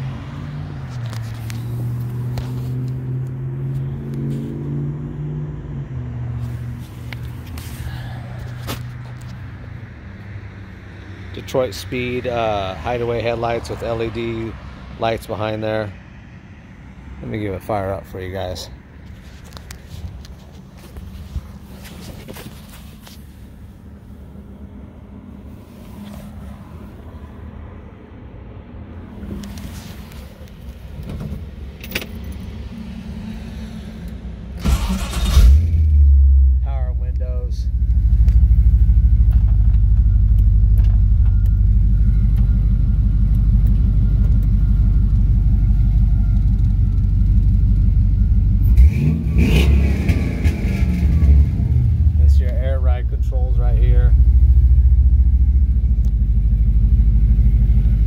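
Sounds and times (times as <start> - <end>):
car engine revving: 0.0 - 9.6, 32.3 - 58.0
car engine cranking and idling: 0.0 - 10.4, 17.2 - 27.4, 28.8 - 58.0.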